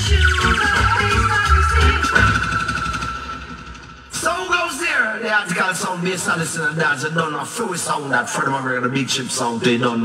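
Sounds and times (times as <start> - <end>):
heavy bass music over speakers: 0.0 - 5.0.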